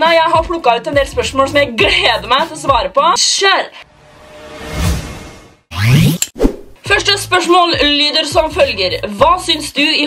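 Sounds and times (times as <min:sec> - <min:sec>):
whoosh: 0:03.9 - 0:06.8
pop rising in pitch: 0:05.7 - 0:06.8.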